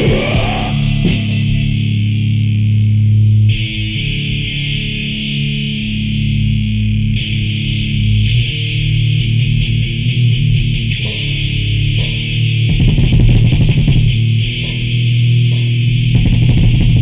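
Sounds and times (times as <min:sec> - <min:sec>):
distorted electric guitar chords: 0:00.0 - 0:17.0.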